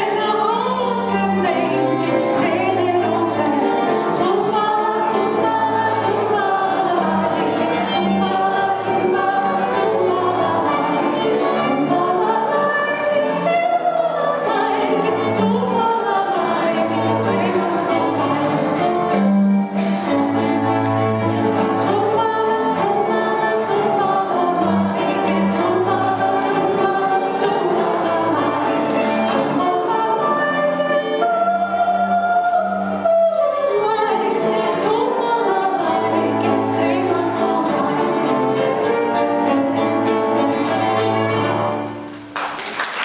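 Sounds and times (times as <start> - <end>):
group singing folk song: 0.0 - 42.2
instrumental accompaniment: 0.0 - 43.0.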